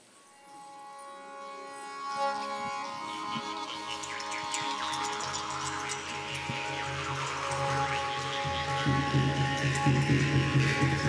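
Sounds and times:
bowed fiddles: 0:00.0 - 0:11.0.

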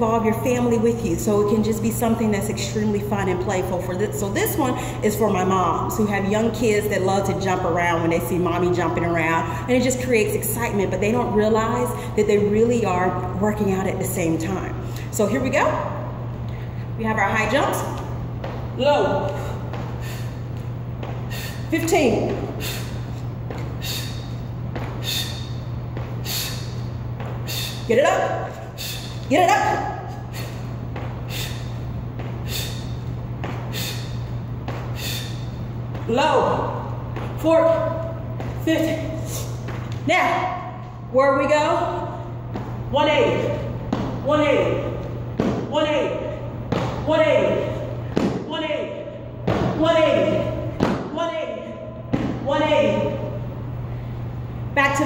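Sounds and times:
steady low hum: 0:00.0 - 0:55.0
feet thudding on gym floor: 0:17.3 - 0:40.9, 0:41.9 - 0:45.7
thuds of jumping: 0:23.4 - 0:27.7.

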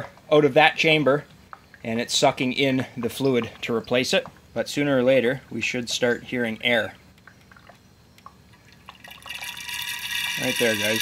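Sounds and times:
oil dripping and trickling: 0:06.0 - 0:11.0.

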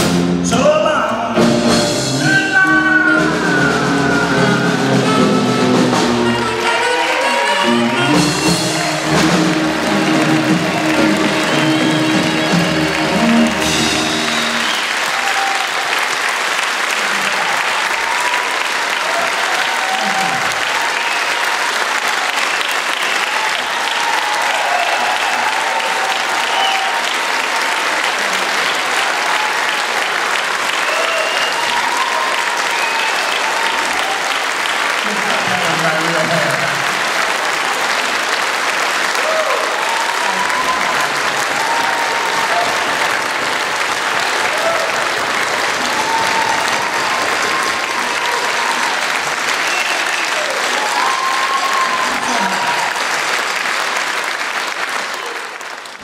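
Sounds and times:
shouts and cheers: 0:02.2 - 0:16.3, 0:16.9 - 0:37.9, 0:39.0 - 0:53.5
audience applauding: 0:02.6 - 0:56.0.

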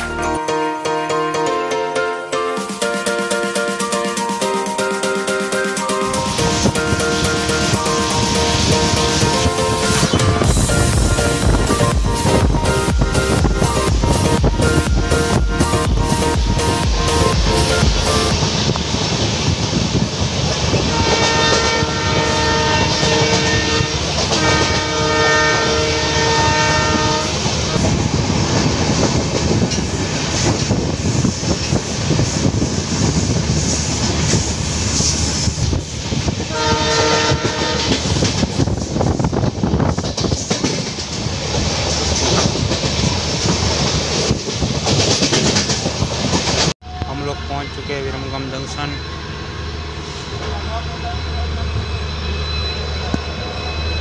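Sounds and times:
rushing wind: 0:06.1 - 0:47.1
train wheels clattering on rails: 0:06.2 - 0:25.7, 0:26.3 - 0:46.8
locomotive horn blasts: 0:20.8 - 0:28.0, 0:36.4 - 0:38.2.

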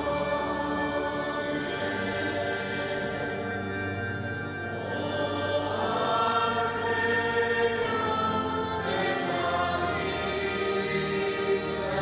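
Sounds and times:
choir singing a hymn: 0:00.0 - 0:12.0
electric keyboard: 0:00.0 - 0:12.0.

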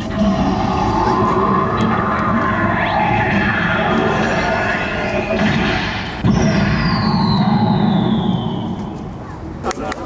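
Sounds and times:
heavy hit: 0:00.0 - 0:08.8
low rumble: 0:00.0 - 0:09.2
whine falling in pitch: 0:00.0 - 0:09.2.

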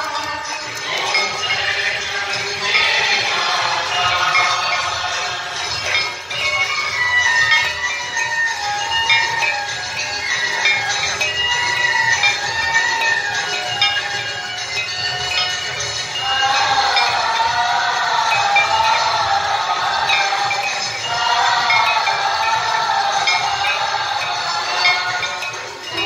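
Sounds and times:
devotional hymn singing: 0:00.0 - 0:08.2, 0:16.1 - 0:26.0
bells clanging: 0:00.0 - 0:26.0.

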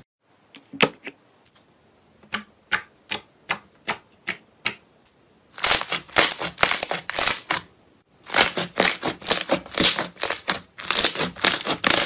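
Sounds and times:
slime crackling and squelching: 0:05.6 - 0:12.0.

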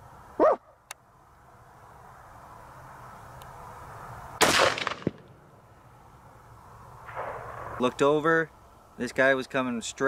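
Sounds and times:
rifle shot: 0:04.4 - 0:05.4, 0:07.0 - 0:07.8.

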